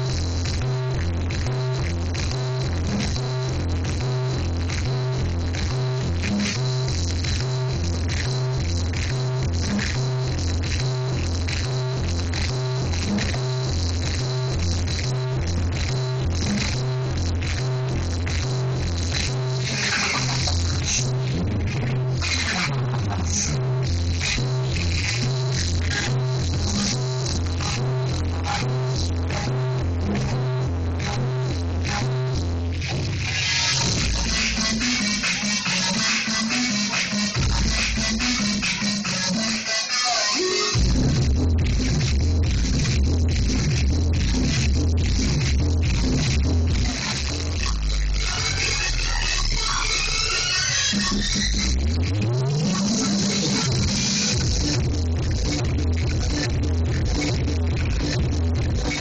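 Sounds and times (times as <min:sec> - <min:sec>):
heavy bass kick: 0:00.0 - 0:35.4, 0:37.4 - 0:38.7, 0:40.8 - 0:50.2, 0:51.0 - 0:52.6, 0:53.2 - 0:59.0
electronic dance music: 0:00.0 - 0:59.0.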